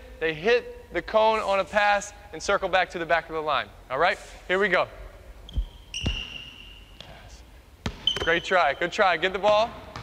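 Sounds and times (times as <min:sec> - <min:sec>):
sneaker squeaking on floor: 0:05.4 - 0:07.2, 0:07.8 - 0:08.8
basketball bouncing on hardwood: 0:09.7 - 0:10.0.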